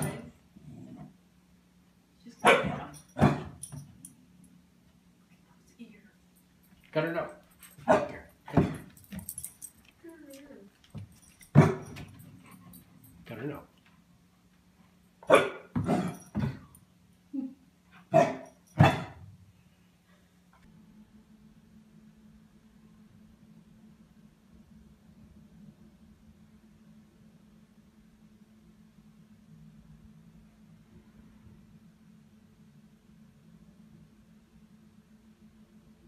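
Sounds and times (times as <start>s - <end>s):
puppy barking: 2.4s - 3.5s, 7.8s - 8.2s, 15.2s - 16.2s, 18.1s - 19.2s.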